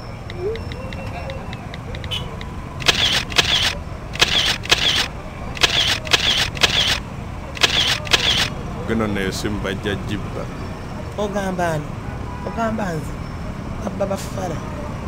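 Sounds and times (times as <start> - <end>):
phone camera shutter clicks: 2.8 - 7.0, 7.6 - 8.6.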